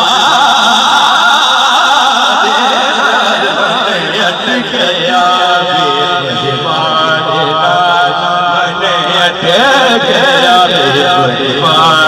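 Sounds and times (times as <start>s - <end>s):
man singing through microphone: 0.0s - 12.0s.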